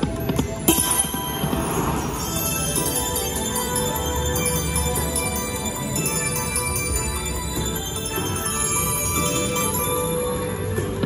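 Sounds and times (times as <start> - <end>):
game music: 0.0 - 11.0
bright chiming jingle: 0.6 - 11.0.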